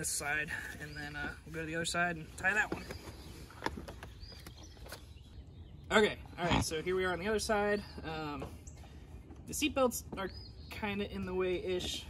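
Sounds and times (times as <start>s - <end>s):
bird chirp: 0.0s - 12.0s
faint outdoor background: 0.0s - 12.0s.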